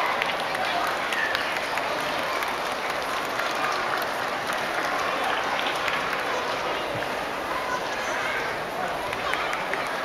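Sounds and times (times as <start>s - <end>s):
audience applauding: 0.0s - 6.9s.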